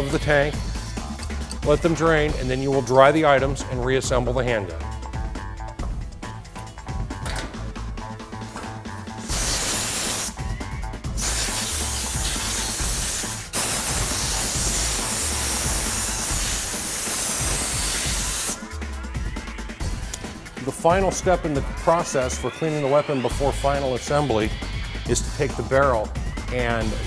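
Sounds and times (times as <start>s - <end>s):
compressed air blow gun hissing: 9.1s - 10.4s, 11.1s - 18.7s.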